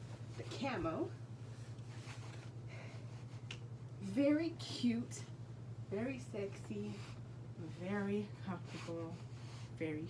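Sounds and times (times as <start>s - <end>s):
room fan humming: 0.0s - 10.0s.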